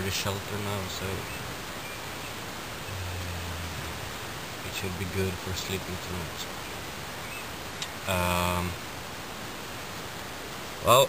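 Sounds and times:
outdoor background hiss: 0.0 - 11.0
man humming: 2.9 - 4.2.

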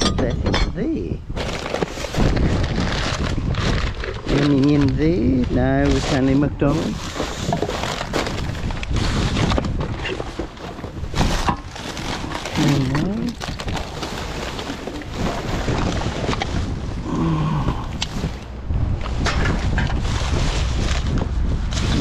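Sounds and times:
wind buffeting microphone: 0.0 - 22.0
plastic bags rustling: 0.9 - 22.0
short vocal sound: 17.0 - 18.0.

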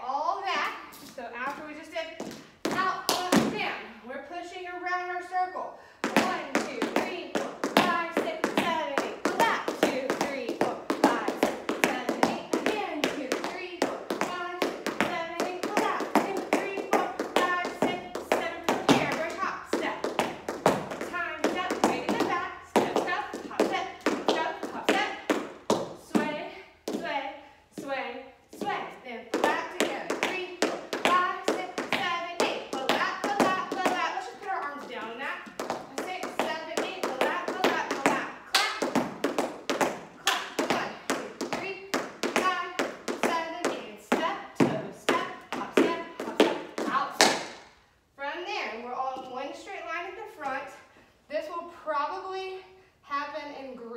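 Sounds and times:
woman speaking: 0.0 - 20.4, 21.0 - 25.3, 26.1 - 38.8, 40.5 - 47.3, 48.2 - 53.9.

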